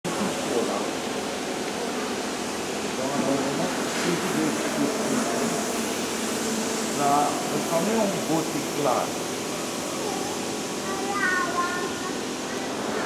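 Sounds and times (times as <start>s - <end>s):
distant people talking: 0.0s - 13.0s
steady background hiss: 0.1s - 13.0s.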